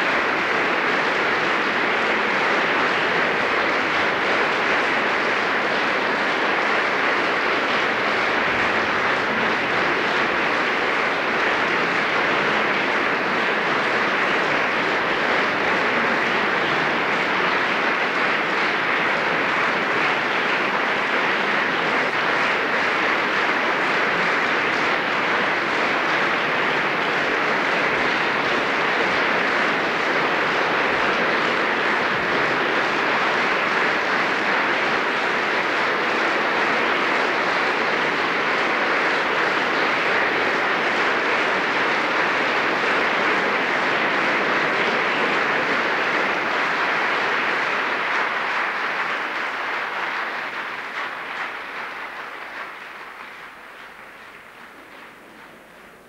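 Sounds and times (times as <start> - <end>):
audience applauding: 0.0 - 56.0.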